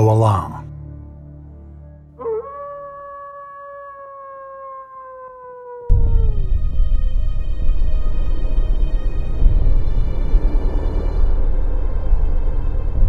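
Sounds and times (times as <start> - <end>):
wolf howling: 2.2 - 6.4
deep rumbling music sting: 5.9 - 13.0.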